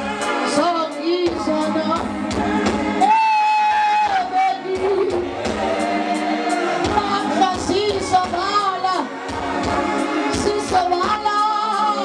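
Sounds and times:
music with steady beat: 0.0 - 12.0
person singing: 3.0 - 9.1, 10.3 - 12.0.

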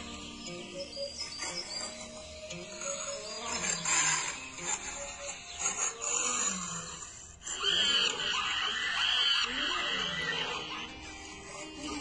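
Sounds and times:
high arching animal calls: 0.5 - 12.0.

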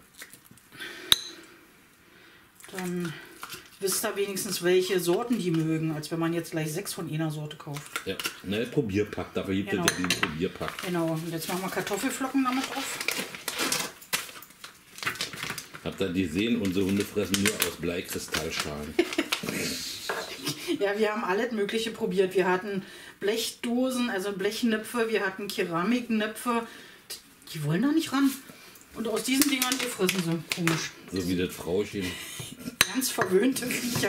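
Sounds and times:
metal spoon clinking on glass bowl: 1.1 - 1.4, 9.8 - 10.3
paper pouch clicking and rustling: 10.6 - 19.5, 29.2 - 30.8.

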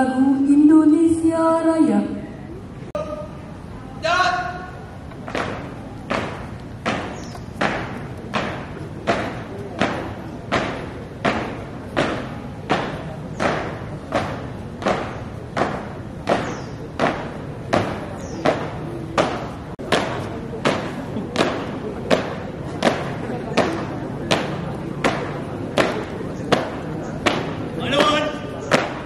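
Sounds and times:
marching feet stamping pavement: 5.0 - 29.0.

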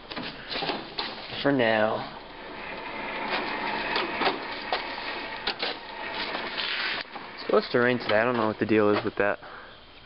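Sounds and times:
objects handled with knocks and scraping: 3.2 - 9.3.

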